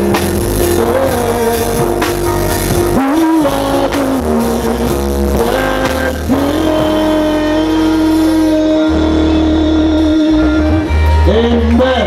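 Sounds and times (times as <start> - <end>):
live band music over pa: 0.0 - 12.0.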